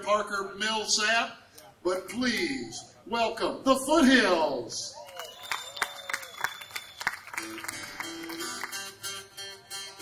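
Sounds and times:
audience clapping and cheering: 5.0s - 9.1s
acoustic guitar notes: 7.4s - 10.0s.

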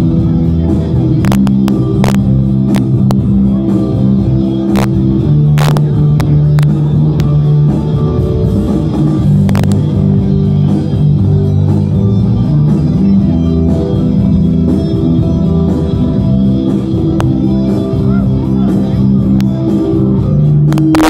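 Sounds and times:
loud music with guitar and bass: 0.0s - 21.0s.

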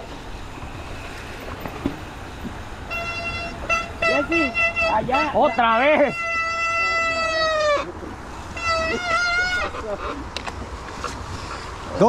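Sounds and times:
bike freehub buzzing: 0.0s - 7.4s.

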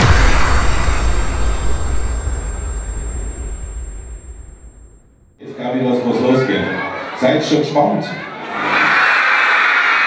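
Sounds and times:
whooshing impact with deep rumble: 0.0s - 5.4s.

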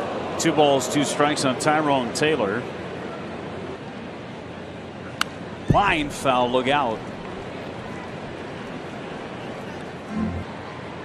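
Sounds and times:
crowd murmur: 6.2s - 11.0s.

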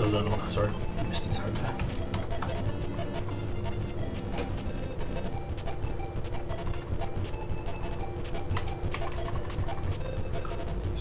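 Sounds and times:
steady low hum: 0.0s - 11.0s
keyboard typing clicks: 7.8s - 10.6s.

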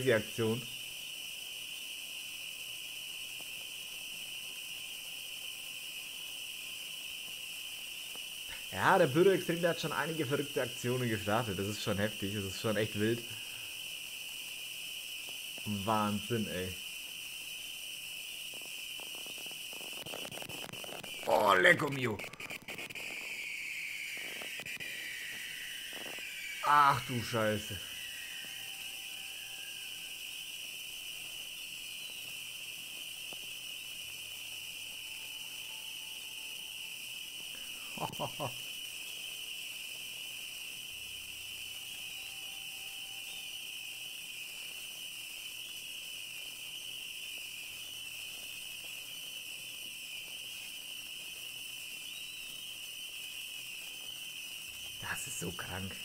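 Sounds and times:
fireworks crackling hiss: 0.0s - 56.0s
man laughing: 37.9s - 38.6s.

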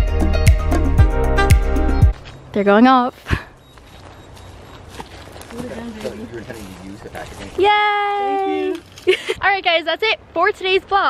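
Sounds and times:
footsteps on dry leaves: 3.6s - 9.4s.

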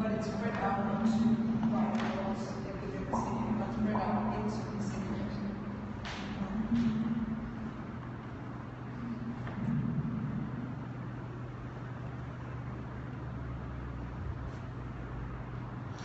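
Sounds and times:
low room hum: 0.0s - 16.0s.

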